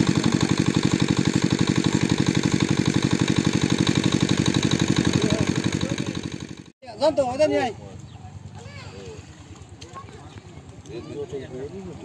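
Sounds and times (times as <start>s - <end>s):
small pump engine chugging: 0.0s - 6.7s.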